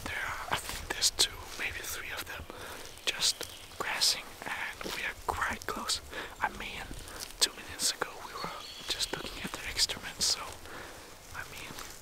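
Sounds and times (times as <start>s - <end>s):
man whispering: 0.0s - 12.0s.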